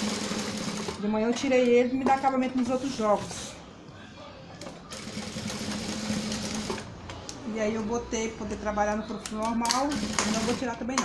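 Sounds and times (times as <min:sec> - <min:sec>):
sewing machine humming: 0:00.0 - 0:01.0, 0:04.9 - 0:06.8, 0:09.8 - 0:10.6.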